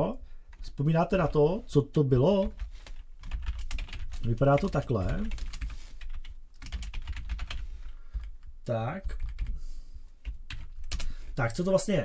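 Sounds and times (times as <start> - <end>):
computer keyboard typing: 2.4 - 9.6, 10.2 - 11.1.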